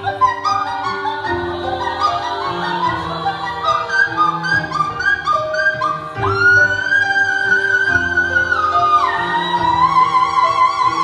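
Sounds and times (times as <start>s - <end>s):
live band playing: 0.0s - 11.0s
women singing in harmony: 0.0s - 11.0s.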